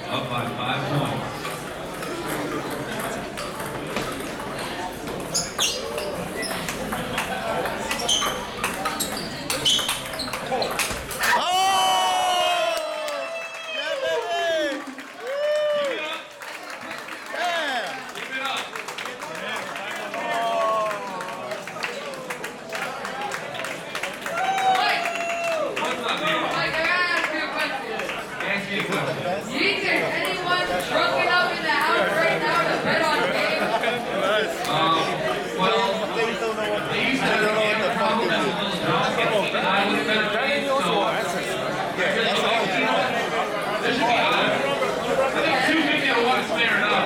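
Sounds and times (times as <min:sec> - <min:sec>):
murmuring crowd: 0:00.0 - 0:47.0.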